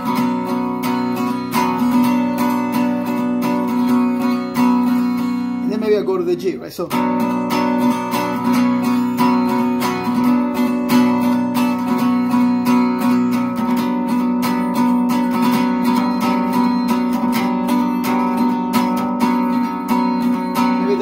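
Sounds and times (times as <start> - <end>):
guitar strumming chords: 0.0 - 21.0.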